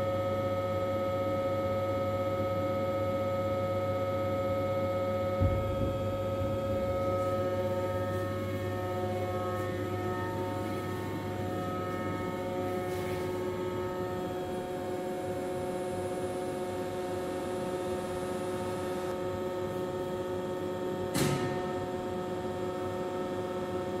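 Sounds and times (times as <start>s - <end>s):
grinding machine humming: 4.2s - 20.9s.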